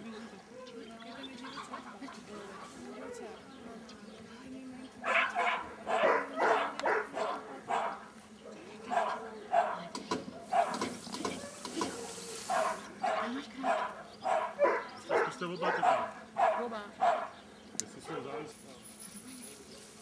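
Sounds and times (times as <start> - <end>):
small dog barking: 5.0 - 8.1, 8.8 - 17.4.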